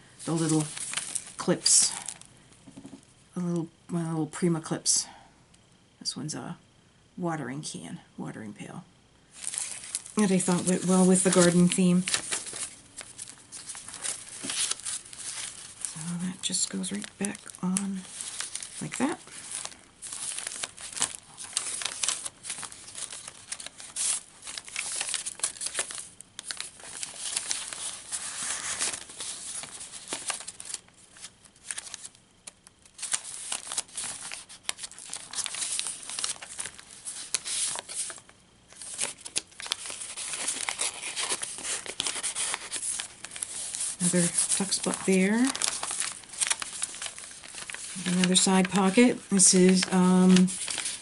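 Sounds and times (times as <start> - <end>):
paper rustling and crinkling: 0.2 - 2.9, 9.4 - 51.0.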